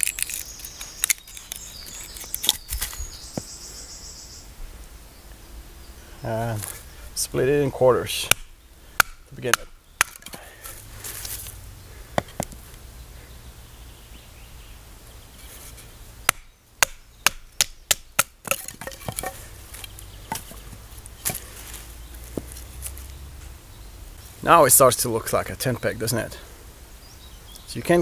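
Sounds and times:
wooden baton striking knife: 0:16.3 - 0:20.6.

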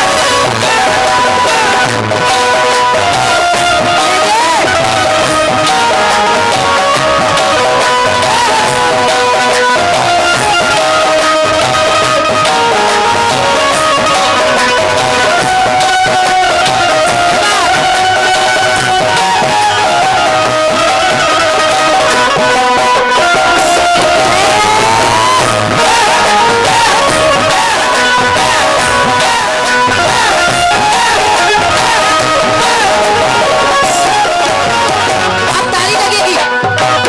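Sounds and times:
melodic lead line: 0:00.0 - 0:36.6
drums and percussion: 0:00.0 - 0:37.0.

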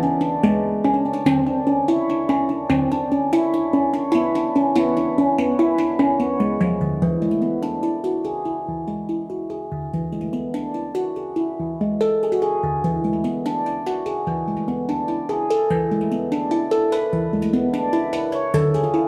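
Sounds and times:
handpan melody played by hand: 0:00.0 - 0:19.0.

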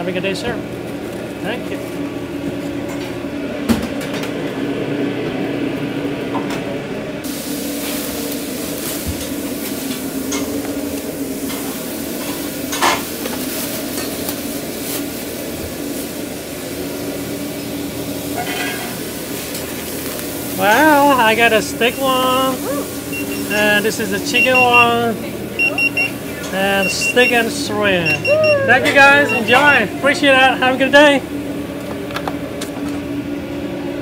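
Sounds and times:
food sizzling in a pan: 0:07.2 - 0:27.0.

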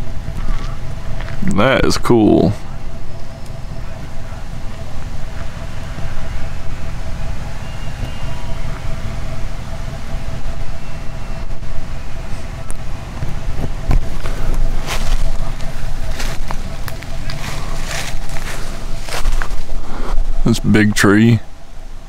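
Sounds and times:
faint steady hum: 0:00.0 - 0:22.0
wind buffeting microphone: 0:02.7 - 0:20.6.

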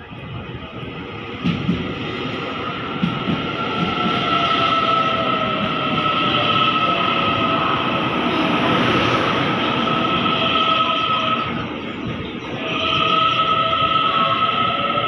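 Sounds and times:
train wheels rumbling on rails: 0:00.0 - 0:15.0.

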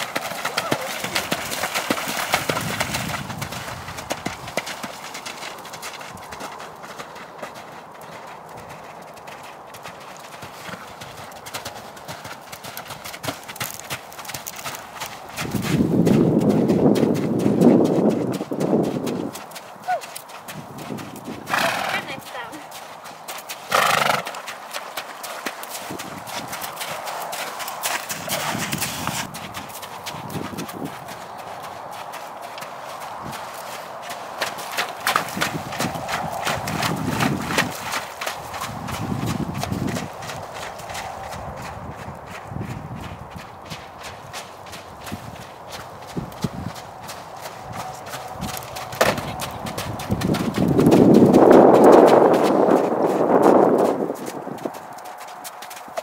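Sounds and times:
horse hoofbeats on wet ground: 0:00.0 - 0:56.0.

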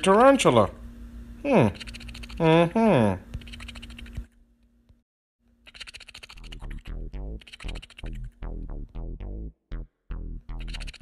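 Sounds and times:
low steady hum: 0:06.3 - 0:11.0
dry scratchy clicks: 0:07.4 - 0:08.3.

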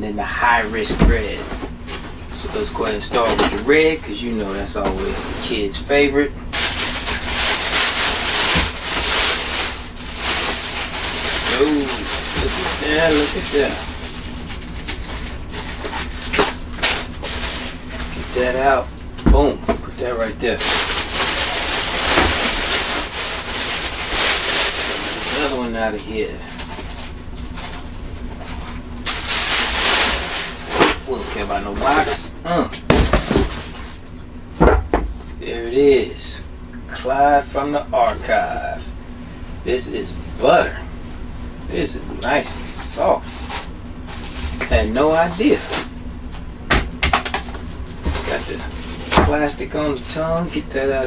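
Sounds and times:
tissue paper rustling: 0:06.5 - 0:18.5, 0:20.6 - 0:25.6, 0:26.5 - 0:32.1, 0:43.2 - 0:44.6.

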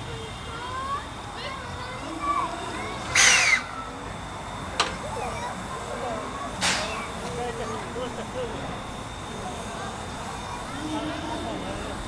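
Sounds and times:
steam hiss: 0:03.0 - 0:12.0
steam locomotive puff: 0:03.1 - 0:03.6, 0:06.6 - 0:07.2.

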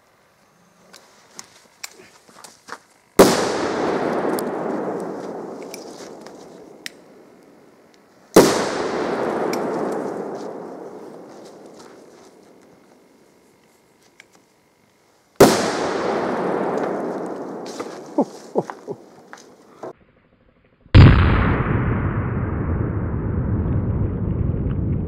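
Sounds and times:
faint small crackles: 0:00.3 - 0:03.2, 0:04.2 - 0:08.3
firecracker bangs: 0:03.2 - 0:07.2, 0:08.4 - 0:12.4, 0:15.4 - 0:19.4
echoing rumble: 0:21.0 - 0:25.0.

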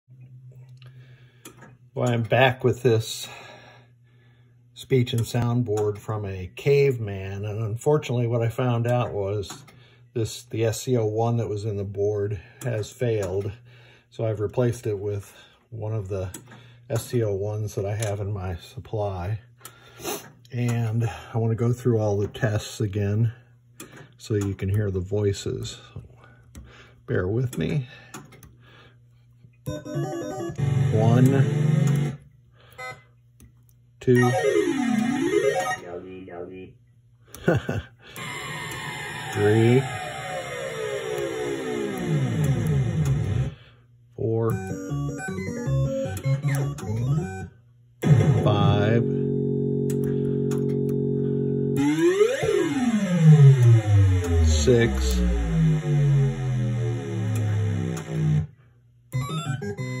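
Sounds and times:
electronic test sound: 0:29.7 - 0:32.2, 0:34.0 - 0:36.2, 0:38.1 - 0:43.5, 0:44.5 - 0:58.5.

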